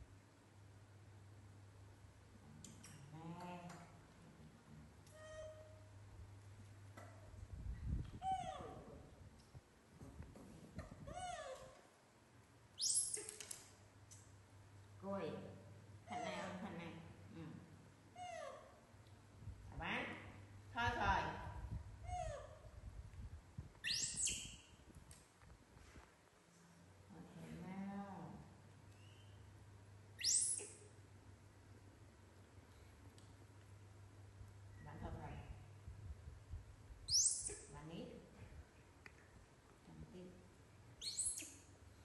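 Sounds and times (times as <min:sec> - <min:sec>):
high-pitched monkey squeal: 0:05.1 - 0:05.8, 0:12.8 - 0:13.4, 0:22.1 - 0:22.6, 0:23.8 - 0:24.6, 0:30.2 - 0:30.9, 0:37.1 - 0:37.7, 0:41.0 - 0:41.6
baby monkey call: 0:22.1 - 0:22.6, 0:23.8 - 0:24.6, 0:30.2 - 0:30.9, 0:37.1 - 0:37.7, 0:41.0 - 0:41.6.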